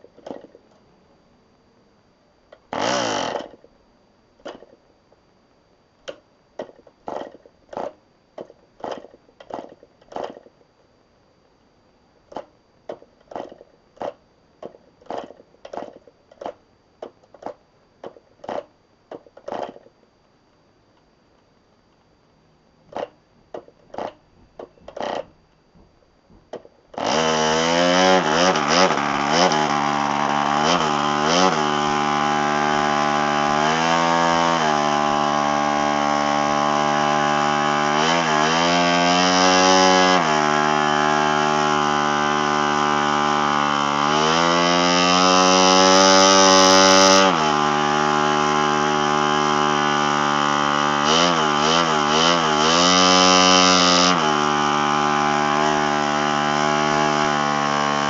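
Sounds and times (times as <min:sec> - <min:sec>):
model engine popping: 0:02.6 - 0:03.7, 0:26.5 - 0:58.0
model aircraft engine running loudly: 0:27.0 - 0:58.0.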